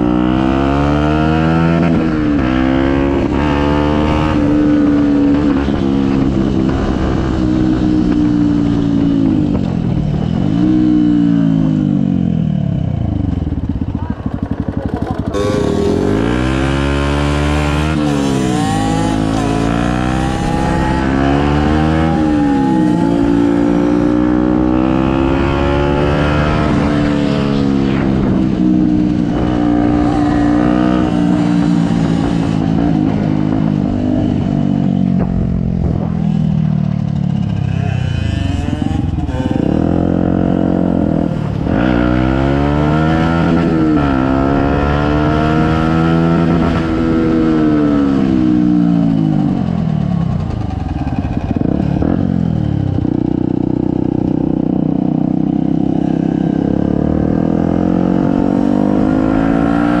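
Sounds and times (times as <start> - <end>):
small motorcycle engine: 12.6 - 33.2, 36.9 - 41.6.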